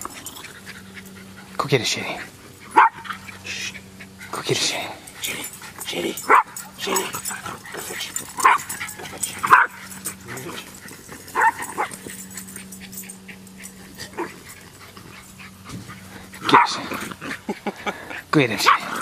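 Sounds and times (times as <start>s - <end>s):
small dogs barking: 0.0s - 19.0s.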